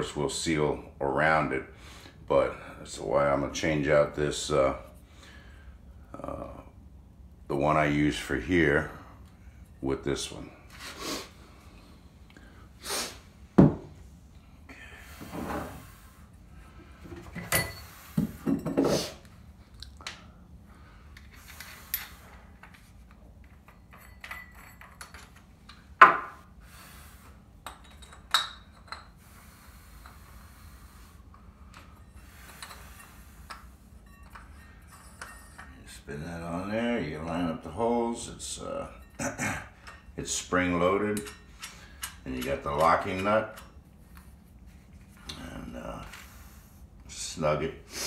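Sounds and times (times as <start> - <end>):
metal hole saws clinking: 39.8 - 43.8.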